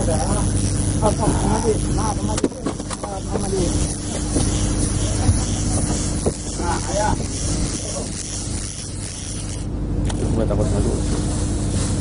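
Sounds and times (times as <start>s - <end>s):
boat engine humming: 0.0s - 10.2s.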